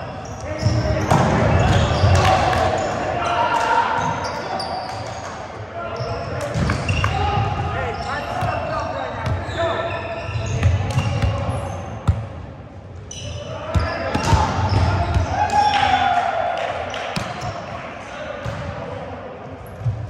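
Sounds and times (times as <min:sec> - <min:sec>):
players' voices calling out: 0:05.9 - 0:12.0.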